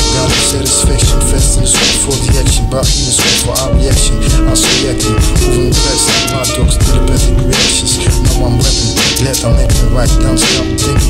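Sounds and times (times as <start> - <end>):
heavy bass: 0.0 - 11.0
rapping over a beat: 0.0 - 11.0.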